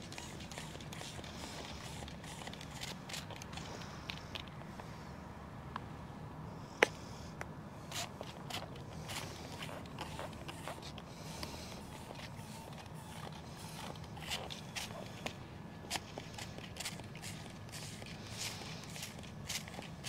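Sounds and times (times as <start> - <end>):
spray bottle squirts: 0.0 - 3.7, 8.5 - 15.1.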